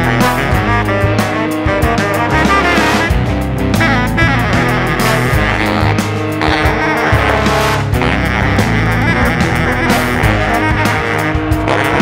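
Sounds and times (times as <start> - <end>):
big band jazz music: 0.0 - 12.0.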